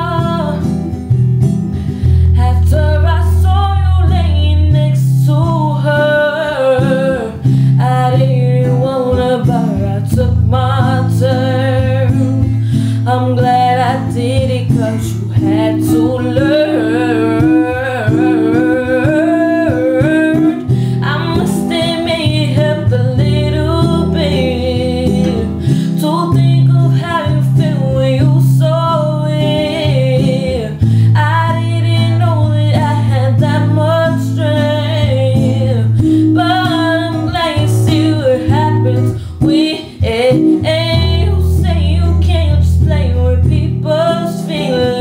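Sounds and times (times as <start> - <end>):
woman singing ballad: 0.0 - 1.0, 1.9 - 45.0
guitar accompaniment: 0.0 - 45.0.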